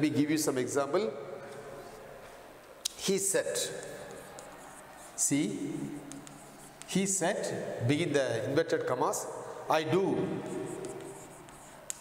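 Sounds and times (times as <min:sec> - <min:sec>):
chalk scratching on chalkboard: 0:03.5 - 0:07.7, 0:10.1 - 0:12.0
sharp chalk tap: 0:03.7 - 0:05.0, 0:05.8 - 0:07.2, 0:10.3 - 0:12.0.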